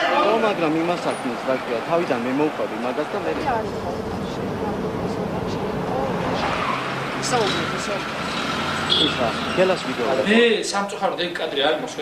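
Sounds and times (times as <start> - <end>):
people talking at once: 0.0 - 8.1
steady noisy background: 0.0 - 12.0.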